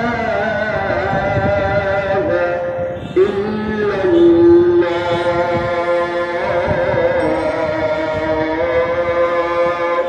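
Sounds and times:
person chanting: 0:00.0 - 0:10.0.

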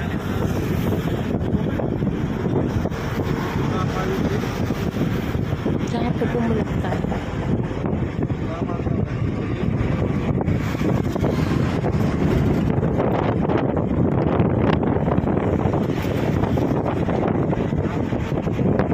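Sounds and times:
wind buffeting microphone: 0:00.0 - 0:18.9.

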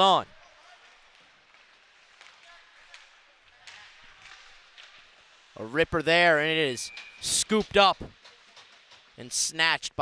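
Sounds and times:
skates on ice: 0:00.3 - 0:06.9
sticks and puck clicking: 0:00.9 - 0:05.4.

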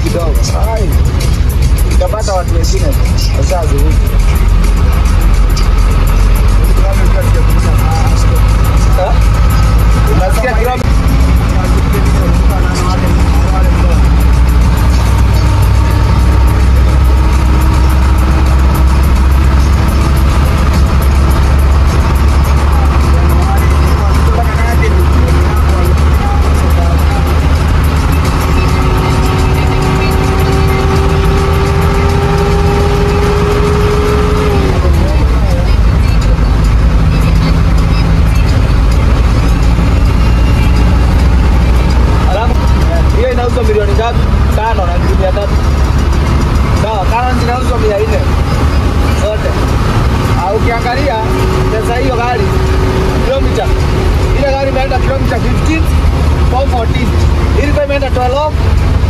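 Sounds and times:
engine and road rumble: 0:00.0 - 0:59.0
engine whine: 0:00.0 - 0:59.0.

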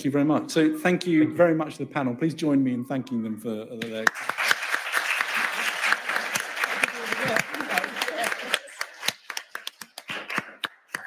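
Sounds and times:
scattered hand claps: 0:03.8 - 0:11.0.

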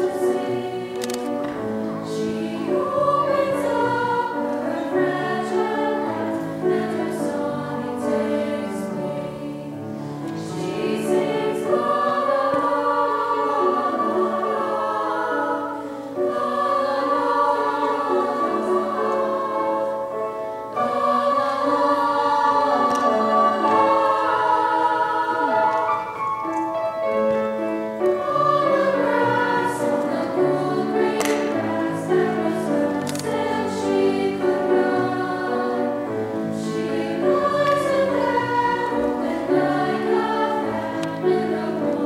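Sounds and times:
vocal ensemble singing in harmony: 0:00.0 - 0:42.0.

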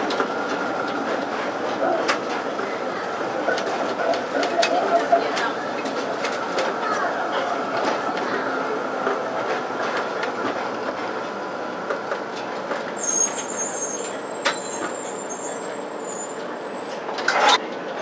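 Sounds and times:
tram clatter: 0:00.0 - 0:18.0
tram wheels running on track: 0:00.0 - 0:18.0
high wheel squeal: 0:13.0 - 0:17.0.

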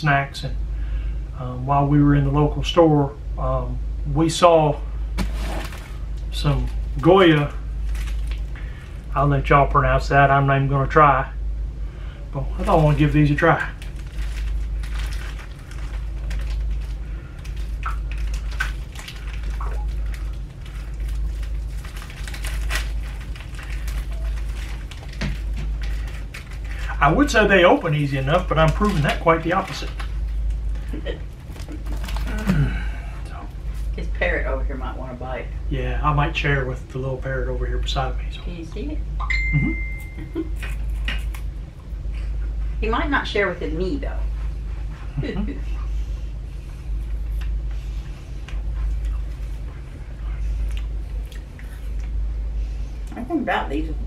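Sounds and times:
steady low hum: 0:00.0 - 0:54.0
packaging crinkling and tearing: 0:05.2 - 0:09.1, 0:12.6 - 0:32.9
wafer cookie crunching: 0:05.2 - 0:09.4, 0:12.3 - 0:34.0, 0:40.0 - 0:42.4.

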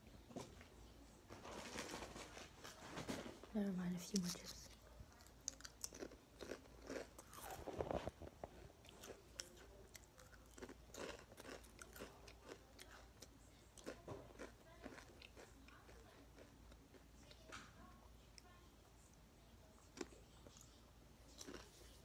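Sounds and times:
crunchy snack being chewed: 0:05.1 - 0:17.5, 0:19.9 - 0:22.0.

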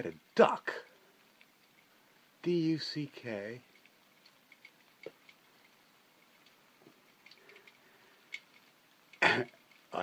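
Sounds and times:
faint light ticks: 0:00.0 - 0:02.0, 0:03.2 - 0:10.0.

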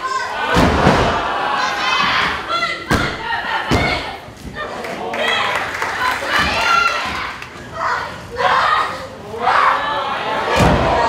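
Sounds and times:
people shouting: 0:00.0 - 0:11.0.

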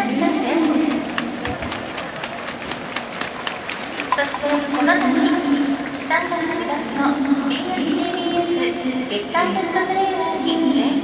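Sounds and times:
steady open-air hum: 0:00.0 - 0:11.0
crowd handclaps: 0:00.6 - 0:06.6.

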